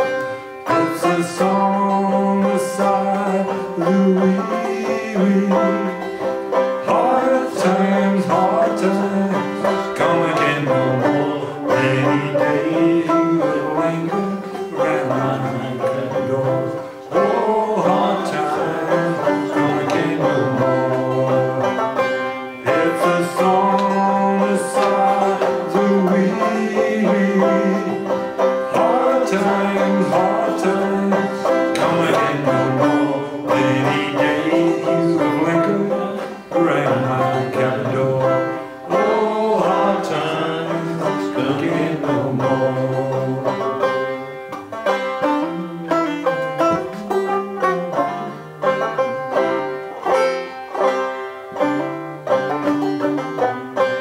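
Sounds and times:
man singing: 0:00.0 - 0:49.1
banjo strummed and picked: 0:00.0 - 0:54.0.

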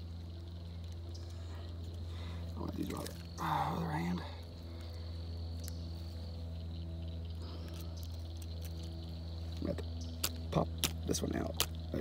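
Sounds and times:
insects trilling: 0:00.0 - 0:12.0
low steady hum: 0:00.0 - 0:12.0.

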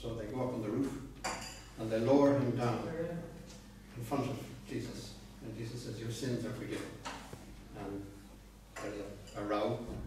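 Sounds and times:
man speaking: 0:00.0 - 0:01.2, 0:01.8 - 0:07.0, 0:07.7 - 0:08.2.

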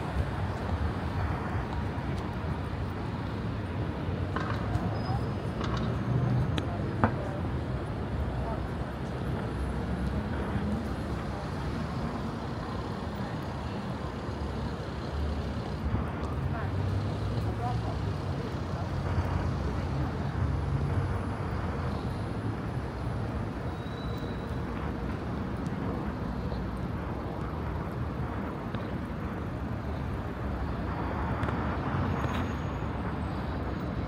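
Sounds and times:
road traffic passing: 0:00.0 - 0:34.0.

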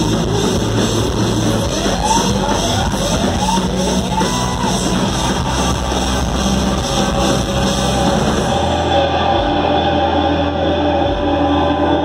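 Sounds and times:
electric guitar: 0:00.0 - 0:12.0
live rock band: 0:00.0 - 0:12.0.

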